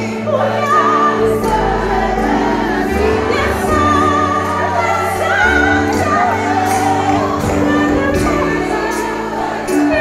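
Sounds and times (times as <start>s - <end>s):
group of voices singing: 0.0s - 10.0s
live band: 0.0s - 10.0s
woman singing into microphone: 0.0s - 10.0s.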